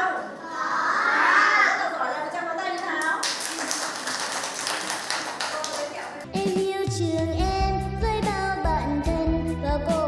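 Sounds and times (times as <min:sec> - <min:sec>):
people clapping: 0:02.7 - 0:06.2
music: 0:05.6 - 0:10.0.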